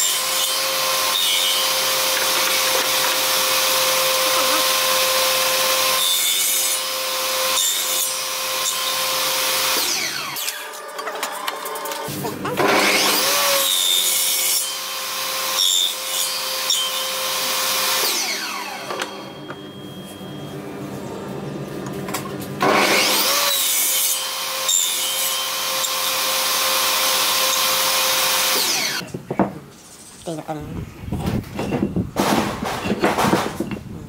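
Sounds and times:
table saw cutting wood: 0.0 - 19.7, 22.6 - 29.1.

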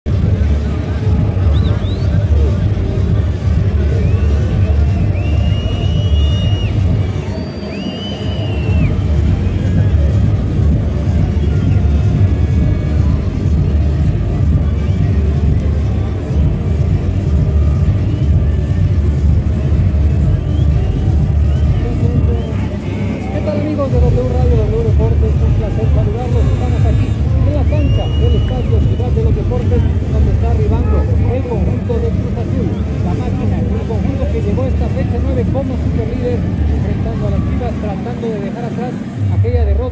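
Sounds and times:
music over public address: 0.0 - 39.9
crowd chatter: 0.1 - 39.9.

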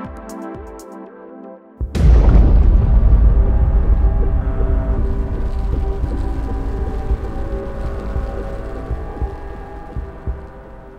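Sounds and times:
soft low thumps: 1.8 - 10.9
deep rumble: 2.0 - 10.9
sustained droning chord: 2.0 - 10.9.

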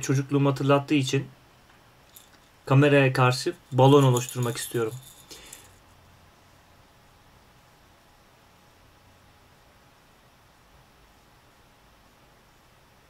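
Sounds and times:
faint room hiss: 0.0 - 13.0.

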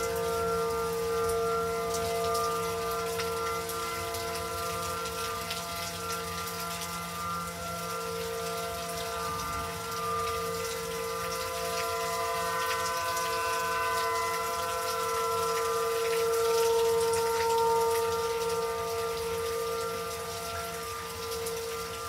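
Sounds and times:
rain hiss: 0.0 - 22.0
warning sirens steady tone: 0.0 - 22.0.

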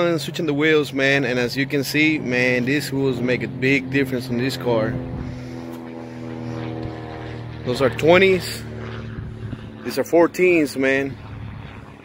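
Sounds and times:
motor humming: 1.5 - 12.0.

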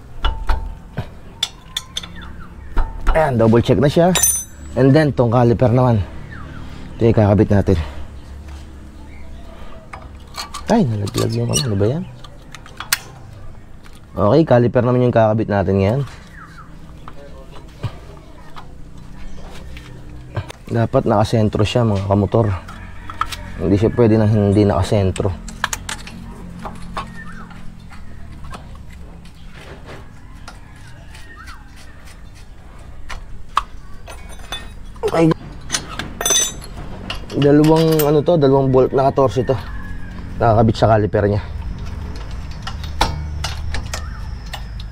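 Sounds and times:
light metal clicks and knocks: 0.2 - 3.2
sharp metal click: 10.3 - 13.2.

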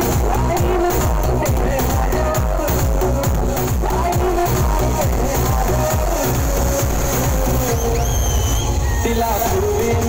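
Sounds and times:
heavy bass kick: 0.0 - 8.9
electronic dance music: 0.0 - 10.0.

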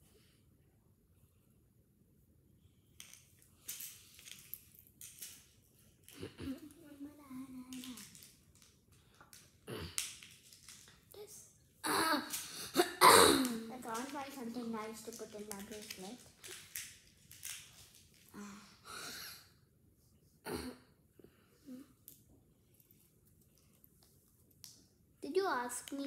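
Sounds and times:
handling clicks and rustles: 13.7 - 18.3
speech-like voice sounds: 25.2 - 26.0.

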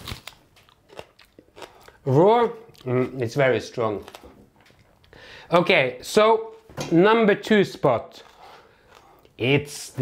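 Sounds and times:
person crunching raw onion: 0.0 - 5.2.

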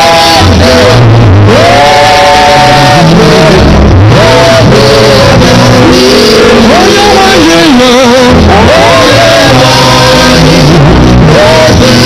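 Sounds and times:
bass line: 0.0 - 12.0
person singing long held notes: 0.0 - 12.0.

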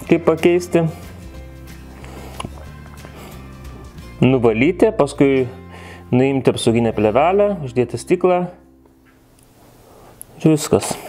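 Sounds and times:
music with held notes: 0.0 - 10.2.

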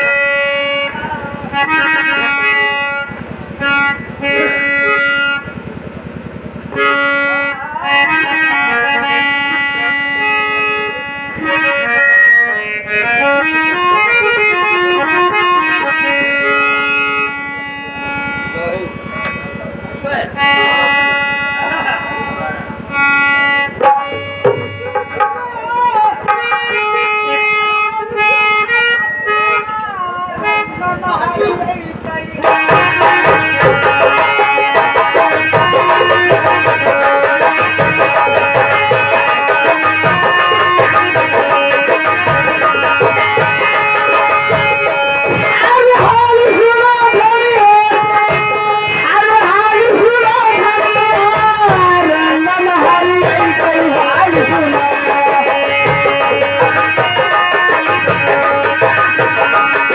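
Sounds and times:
electronic keyboard melody: 0.0 - 59.9
fast hand drum rhythm: 23.8 - 27.1, 31.0 - 59.9.

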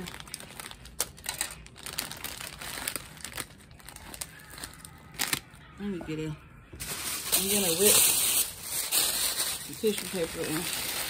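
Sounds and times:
plastic packaging crinkling: 0.0 - 5.6, 6.8 - 11.0.

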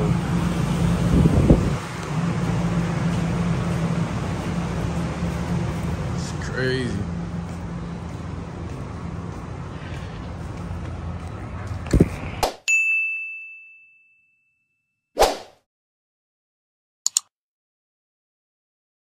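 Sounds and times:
low hum and outdoor noise: 0.0 - 13.9
bell-like ding: 12.7 - 15.0
short whoosh: 15.2 - 15.6.

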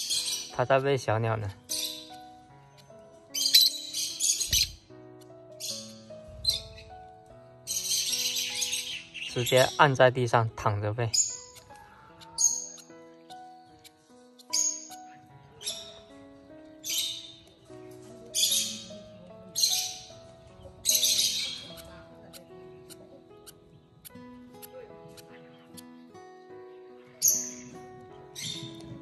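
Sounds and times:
birds squawking raspily: 0.0 - 17.5, 18.3 - 29.0
plucked background music: 0.0 - 29.0.

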